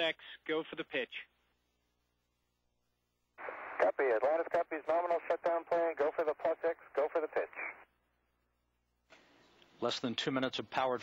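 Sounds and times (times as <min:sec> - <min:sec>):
man speaking over radio: 0:03.5 - 0:07.9.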